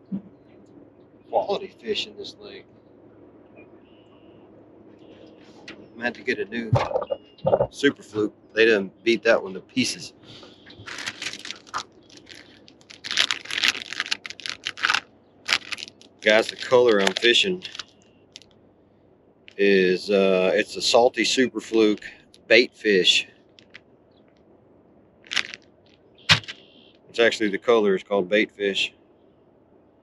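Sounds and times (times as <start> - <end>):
plastic bag crackling: 10.8 - 18.5, 25.3 - 25.6
plastic package crinkling: 10.8 - 18.5, 23.6 - 23.8, 25.3 - 25.6.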